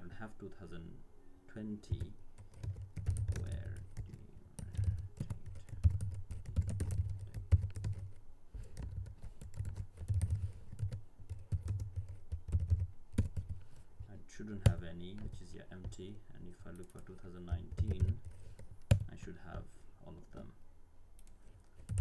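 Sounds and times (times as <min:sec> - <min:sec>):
typing on computer keyboard: 0:01.9 - 0:08.2, 0:08.8 - 0:13.6, 0:17.7 - 0:19.1, 0:21.2 - 0:22.0.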